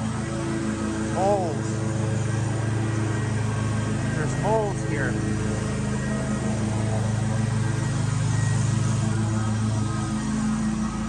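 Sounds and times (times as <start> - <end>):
small two-stroke engine running: 0.0 - 11.0.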